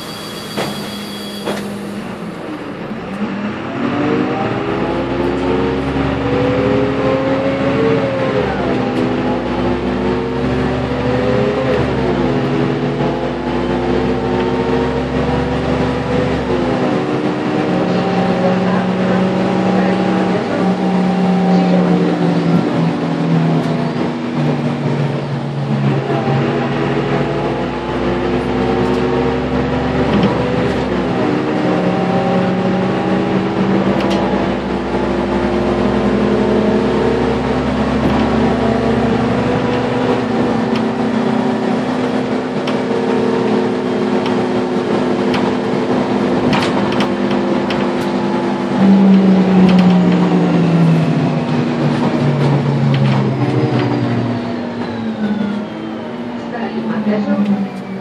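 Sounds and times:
bus diesel engine accelerating: 0.0s - 58.0s.

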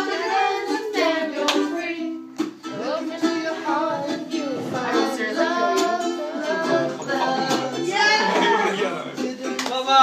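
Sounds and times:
person singing: 0.0s - 10.0s
ukulele strumming: 0.0s - 10.0s
hands clapping: 1.4s - 1.7s, 9.5s - 10.0s.

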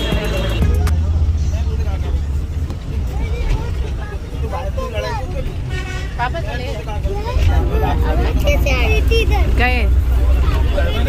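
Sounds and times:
bus engine rumbling: 0.0s - 11.0s
people talking: 0.0s - 11.0s.

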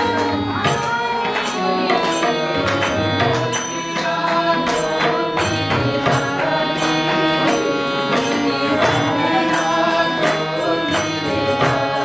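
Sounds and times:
chanted melody: 0.0s - 12.0s
harmonium sustained chords: 0.0s - 12.0s
tabla strikes: 0.0s - 12.0s.

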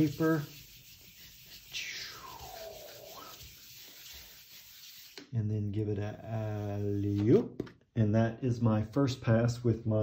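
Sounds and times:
hand rubbing paper: 0.0s - 5.2s, 6.4s - 7.4s.

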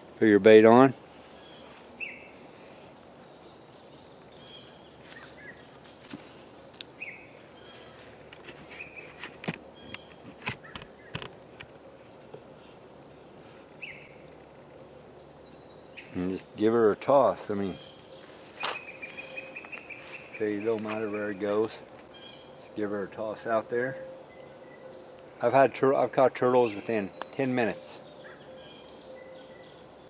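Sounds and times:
steady background hiss: 0.0s - 30.0s
bird chirps: 1.3s - 2.4s, 3.2s - 11.2s, 13.8s - 25.6s, 26.4s - 30.0s.

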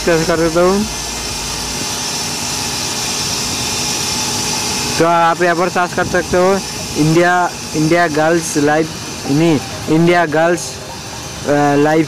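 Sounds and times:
steady background hiss: 0.0s - 12.0s
person speaking: 5.0s - 12.0s.

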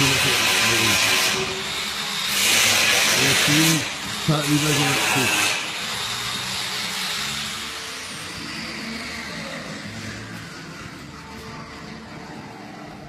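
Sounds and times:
workshop machine noise: 0.0s - 13.0s.

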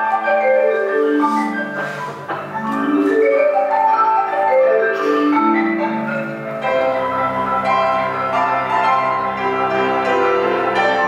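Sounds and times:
marimba notes: 0.0s - 11.0s
marimba chord with deep bass: 0.2s - 10.9s.

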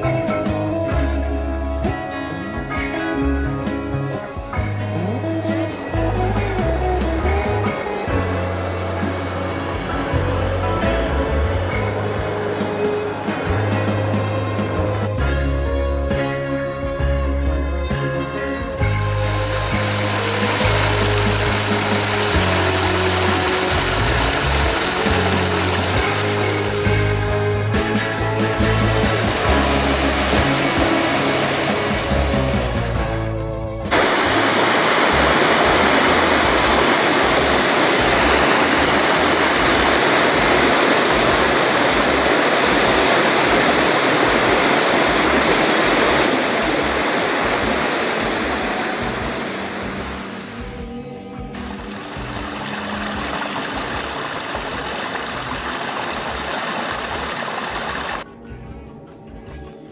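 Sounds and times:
music: 0.0s - 59.9s
waterfall rushing: 5.0s - 14.8s, 18.7s - 33.0s, 33.9s - 50.7s, 51.6s - 58.2s.

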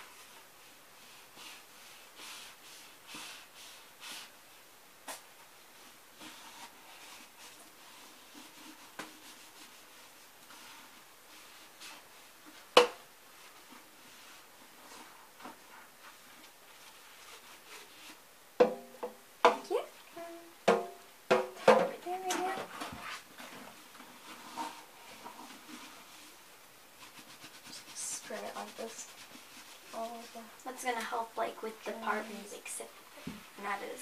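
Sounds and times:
dishes knocking in sink: 18.6s - 19.6s, 20.7s - 22.0s.

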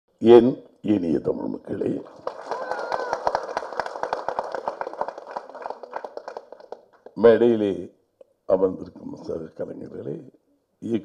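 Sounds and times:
audience applauding: 2.0s - 7.2s.

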